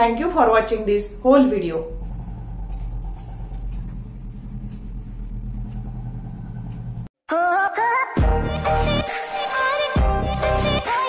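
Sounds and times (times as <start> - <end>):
low hum and rumble: 0.0 - 7.1.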